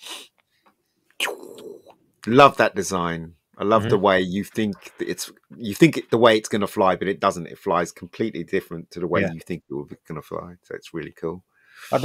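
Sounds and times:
person breathing: 11.5s - 12.0s.

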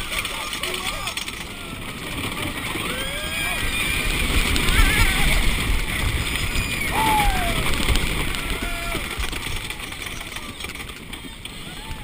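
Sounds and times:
roller coaster rumbling on track: 0.0s - 12.0s
riders yelling and screaming: 0.1s - 12.0s
wind rushing over microphone: 1.7s - 10.2s.

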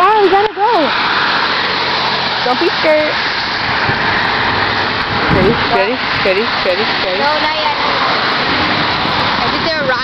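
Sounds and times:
car tyres hissing on wet road: 0.0s - 10.0s
steady roadside hiss: 0.0s - 10.0s.

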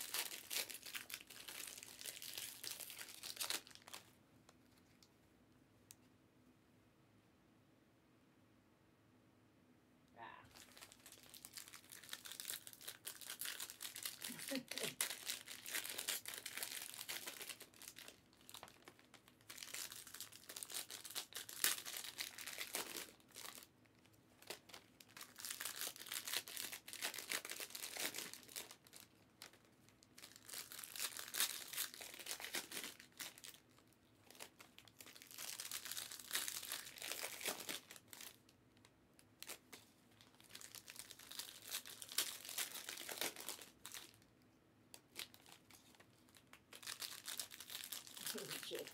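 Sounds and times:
foil wrappers tearing and crinkling: 0.0s - 4.1s, 10.5s - 23.7s, 24.4s - 38.5s, 39.4s - 44.2s, 45.0s - 48.9s.

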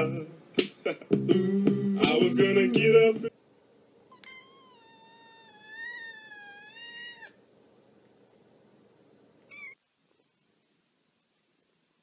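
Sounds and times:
kitten meowing: 4.1s - 7.4s, 9.5s - 9.8s.

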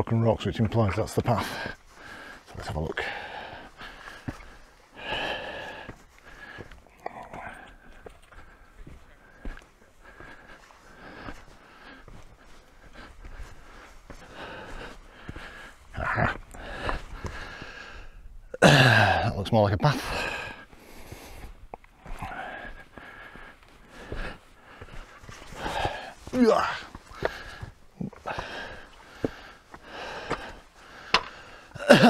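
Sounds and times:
man breathing hard: 1.3s - 19.3s, 20.0s - 32.0s
sharp knocks: 31.1s - 31.4s.

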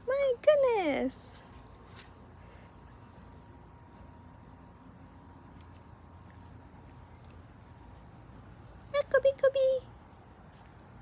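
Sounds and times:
high-pitched insect chirring: 0.0s - 10.5s.

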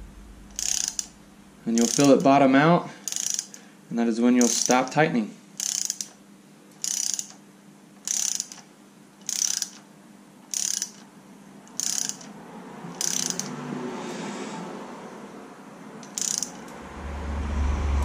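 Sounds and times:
hand ratchet clicking: 0.5s - 2.3s, 3.0s - 3.6s, 4.4s - 5.0s, 5.6s - 6.2s, 6.8s - 7.4s, 8.0s - 9.8s, 10.5s - 11.1s, 11.7s - 12.3s, 12.9s - 13.6s, 16.0s - 16.8s.

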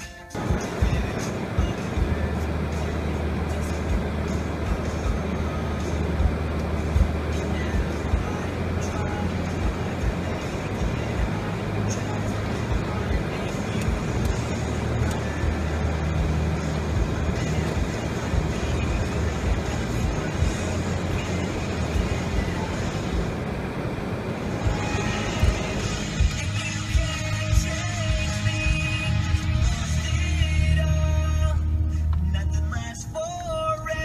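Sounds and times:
music: 0.0s - 23.4s, 24.5s - 34.0s
car road noise with tyre hiss: 0.0s - 34.0s.

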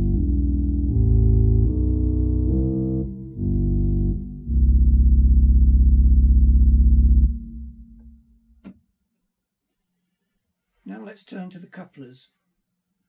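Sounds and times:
pipe organ chords: 0.0s - 8.4s.

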